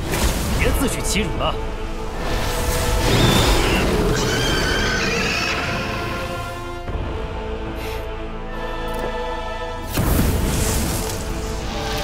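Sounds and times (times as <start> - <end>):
soundtrack music: 0.0 - 12.0.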